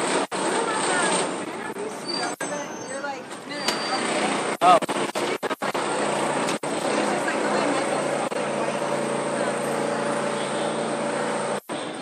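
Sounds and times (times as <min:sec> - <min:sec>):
vehicle engine drone: 0:04.0 - 0:12.0.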